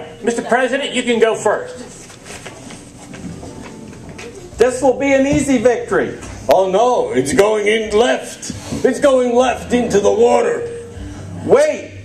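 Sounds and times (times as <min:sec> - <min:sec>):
faint shuffling: 0:01.5 - 0:06.5.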